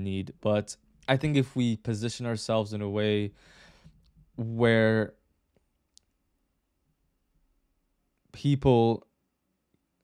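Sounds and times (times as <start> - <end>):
man speaking: 0.0 - 3.4, 4.4 - 5.2, 8.4 - 9.1.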